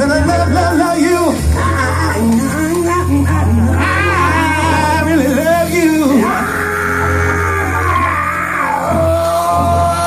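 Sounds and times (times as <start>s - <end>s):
soul band playing: 0.0s - 10.0s.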